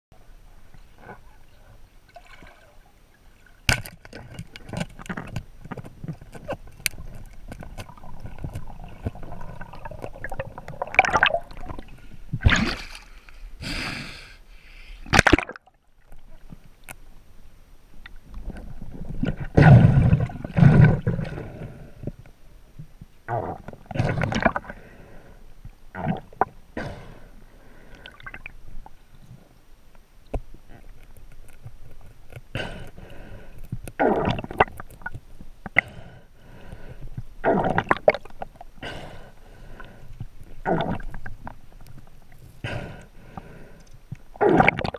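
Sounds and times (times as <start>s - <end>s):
underwater rumble of moving water: 4.2s - 13.3s.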